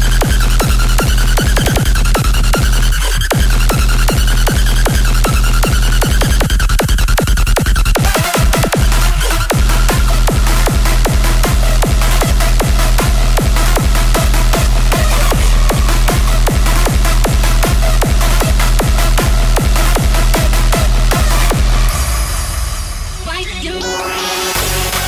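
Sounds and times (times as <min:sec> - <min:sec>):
distorted kick drum: 0:00.0 - 0:25.0.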